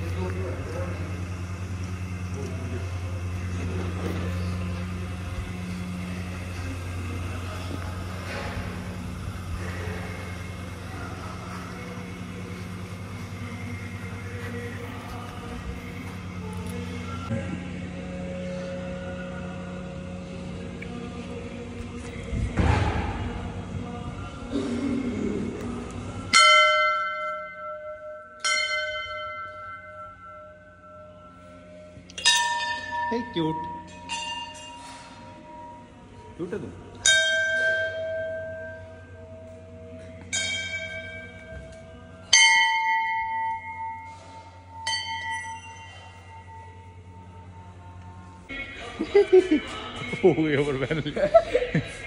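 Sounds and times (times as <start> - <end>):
low hum: 0.0 - 52.0
temple bell ringing: 26.3 - 36.0, 37.0 - 47.8.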